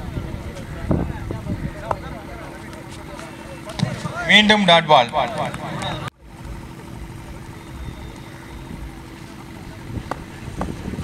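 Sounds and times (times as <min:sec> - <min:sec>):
wind rumble on microphone: 0:00.0 - 0:03.2, 0:06.0 - 0:11.0.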